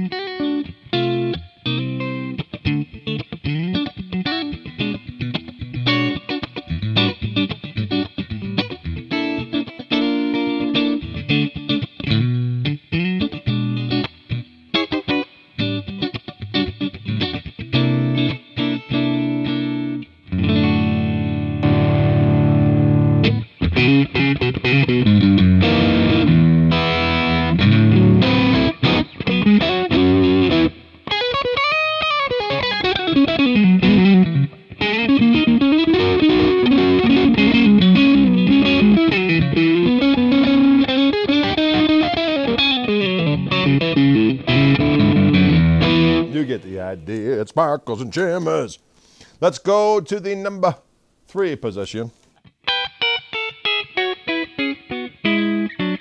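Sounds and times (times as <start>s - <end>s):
electric guitar with string bends: 0.0s - 49.3s, 52.3s - 56.0s.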